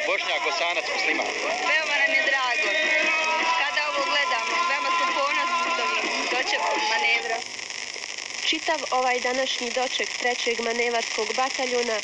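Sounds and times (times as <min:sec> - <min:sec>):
woman talking: 0:08.4 - 0:12.0.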